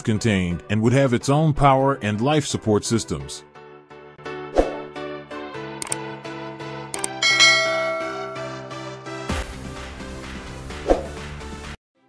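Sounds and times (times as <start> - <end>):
background music: 0.0 - 12.0
mouse click: 5.8 - 6.0, 7.0 - 7.2
bell chime: 7.2 - 9.0.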